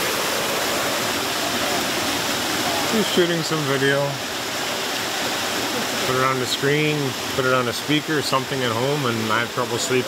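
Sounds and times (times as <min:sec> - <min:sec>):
stream rushing over small falls: 0:00.0 - 0:10.0.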